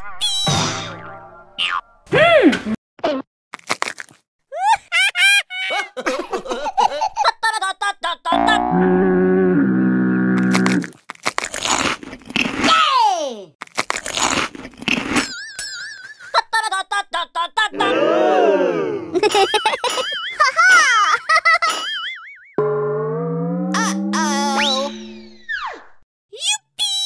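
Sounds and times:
cartoon boings: 21.8 - 25.9
warbling tones: 22.6 - 26.0.

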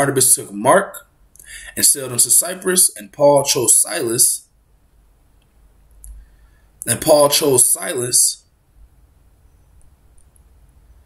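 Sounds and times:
man speaking: 0.0 - 4.4, 6.8 - 8.4.

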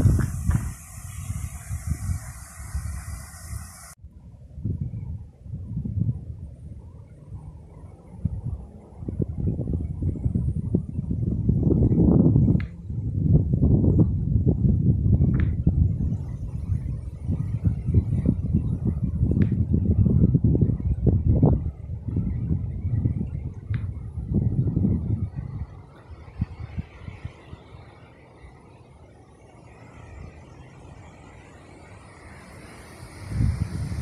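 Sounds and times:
wind buffeting microphone: 0.0 - 28.6, 29.7 - 34.0.

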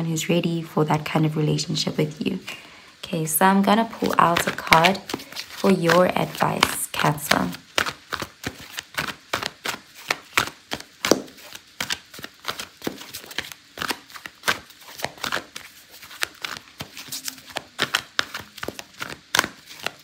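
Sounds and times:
cards being shuffled: 3.8 - 20.0.

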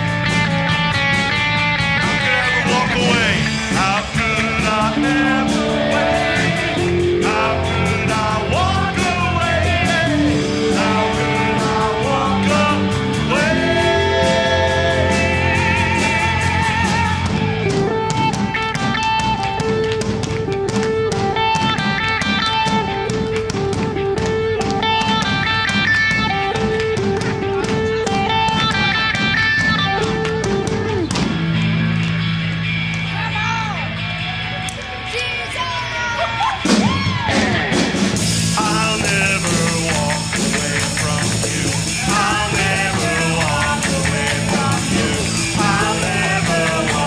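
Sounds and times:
steady drum beat: 0.0 - 31.9, 36.7 - 47.0
electric guitars: 0.0 - 47.0
sustained melody notes: 1.4 - 21.6, 38.1 - 47.0
man singing: 2.0 - 17.8, 37.3 - 47.0.

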